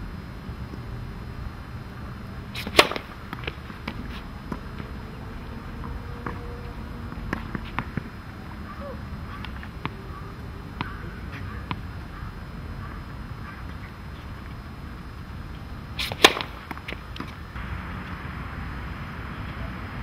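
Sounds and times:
racket hitting tennis ball: 2.6s - 8.6s, 10.8s - 11.9s, 15.9s - 17.4s.

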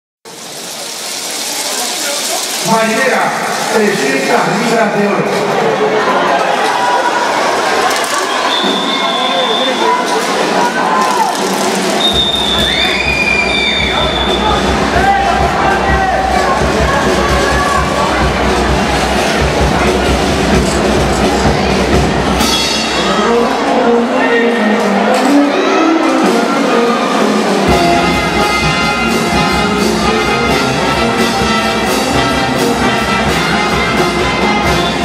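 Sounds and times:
voices in a large hall: 0.3s - 35.0s
music: 8.2s - 35.0s.

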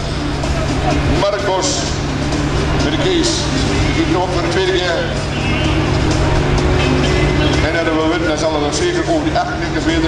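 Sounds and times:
music over loudspeakers: 0.0s - 10.0s
tractor diesel engine running: 0.0s - 10.0s.

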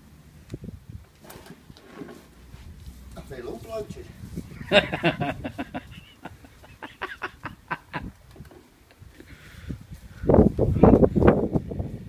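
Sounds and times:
man chuckling softly: 4.5s - 8.2s.

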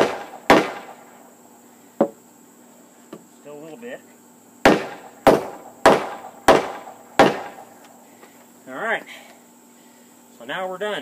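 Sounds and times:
hammer striking wooden joist: 4.7s - 7.6s.

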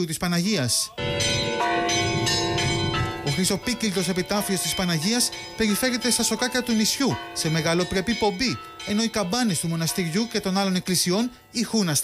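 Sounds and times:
church bells ringing: 0.9s - 12.0s.

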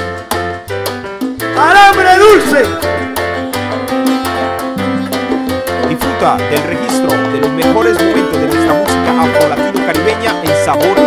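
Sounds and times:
acoustic guitar lead line: 0.0s - 11.0s
bass: 0.0s - 11.0s
piano: 0.0s - 11.0s
steady percussion beat: 0.0s - 11.0s.

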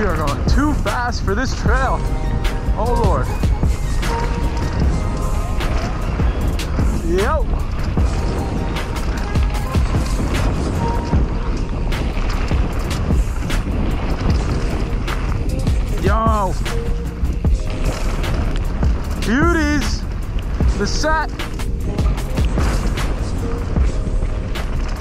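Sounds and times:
bike clicks and rattles: 0.0s - 25.0s
bike tyres roaring over dirt: 0.0s - 25.0s
wind on microphone: 0.0s - 25.0s.

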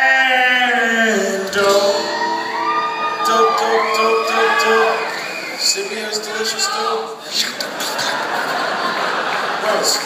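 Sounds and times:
audience whooping and shouting: 1.8s - 6.0s
live music steady chord: 1.9s - 5.1s.

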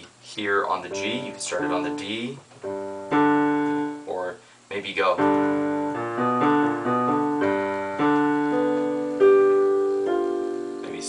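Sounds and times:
digital piano playing intervals: 0.4s - 11.0s.

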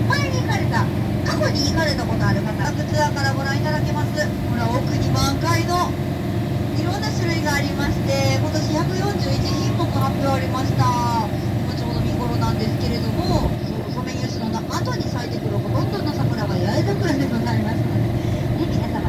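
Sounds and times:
people's voices: 0.0s - 6.0s, 6.7s - 19.0s
bus engine droning: 0.0s - 19.0s.

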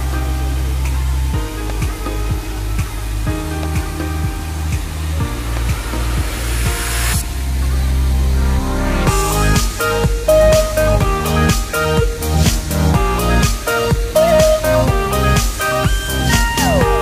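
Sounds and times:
electronic music with deep bass: 0.0s - 17.0s.

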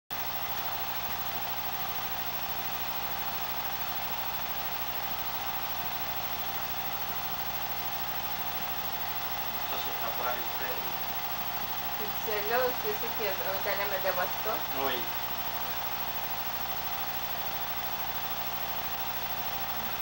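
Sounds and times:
film projector running: 0.1s - 20.0s.

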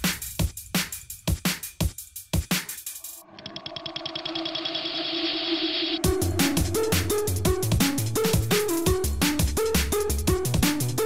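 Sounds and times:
drum beat: 0.0s - 3.2s, 6.0s - 9.6s
fast roll of repeated pulses: 3.0s - 8.9s
wash of noise: 3.1s - 7.1s
held low note: 3.2s - 8.5s.

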